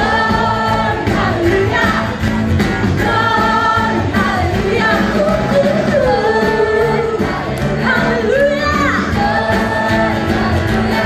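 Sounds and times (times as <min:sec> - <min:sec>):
musical accompaniment: 0:00.0 - 0:11.0
woman singing into microphone: 0:03.0 - 0:11.0.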